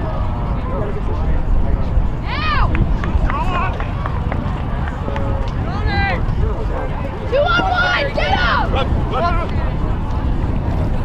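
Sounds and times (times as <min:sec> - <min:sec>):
wind rumble on microphone: 0:00.0 - 0:11.0
people shouting and calling: 0:02.2 - 0:02.7, 0:05.7 - 0:09.7.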